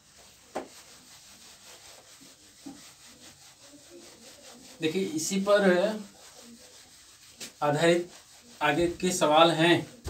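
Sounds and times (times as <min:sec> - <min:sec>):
eraser wiping a whiteboard: 0:00.0 - 0:10.0.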